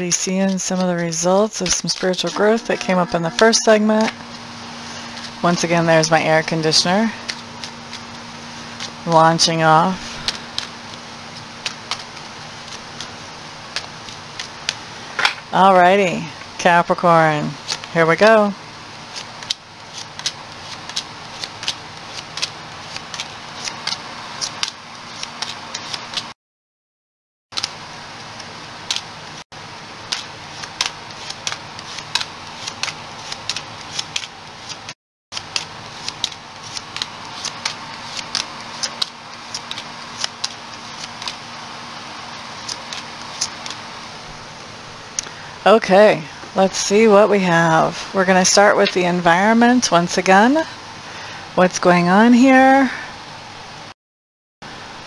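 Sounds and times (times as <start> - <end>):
air conditioner hum: 0.0 - 26.3, 27.6 - 53.9
cards being shuffled: 0.2 - 4.2, 4.8 - 14.8, 19.1 - 26.3, 27.6 - 29.1, 30.0 - 41.4, 42.6 - 43.8.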